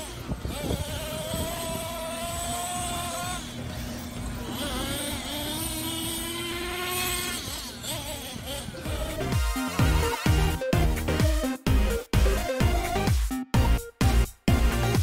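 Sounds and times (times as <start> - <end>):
toy truck motors whining: 0.0 - 13.0.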